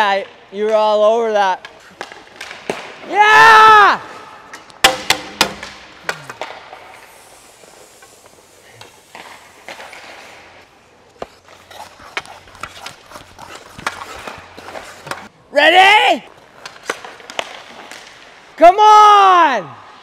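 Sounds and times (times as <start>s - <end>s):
skates scraping ice: 0.1s - 18.6s
pucks and sticks knocking: 1.6s - 3.1s, 4.1s - 7.0s, 8.7s - 15.3s, 16.3s - 18.3s
stick blade tapping pucks: 11.2s - 15.3s.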